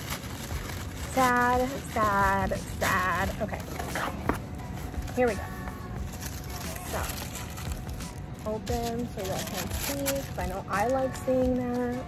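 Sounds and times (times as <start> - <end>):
tissue paper crinkling: 0.0 - 12.0.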